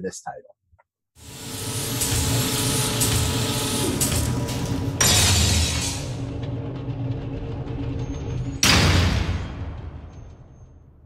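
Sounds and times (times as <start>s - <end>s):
low rumble: 5.8s - 10.7s.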